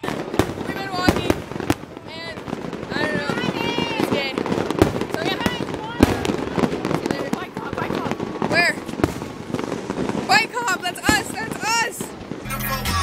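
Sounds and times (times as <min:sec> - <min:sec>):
people talking: 0:00.0 - 0:01.4, 0:02.0 - 0:08.9, 0:10.3 - 0:13.0
firecracker pops: 0:00.0 - 0:12.5.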